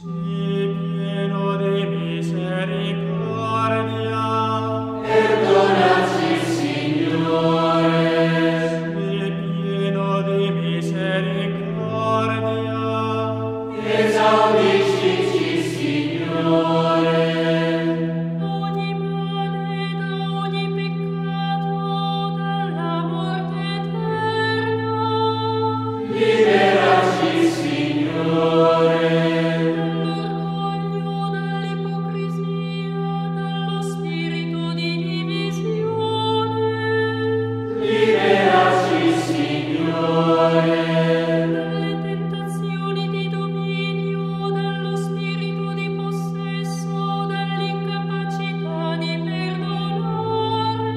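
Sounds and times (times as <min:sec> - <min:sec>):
choral chant: 0:04.0 - 0:11.1, 0:11.7 - 0:19.0, 0:25.9 - 0:31.5, 0:37.6 - 0:43.7
noisy swell: 0:05.0 - 0:09.0, 0:13.7 - 0:18.3, 0:26.0 - 0:30.0, 0:37.7 - 0:41.9.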